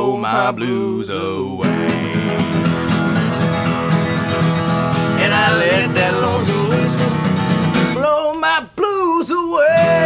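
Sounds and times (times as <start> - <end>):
acoustic guitars strumming: 0.0 - 8.6, 9.5 - 10.0.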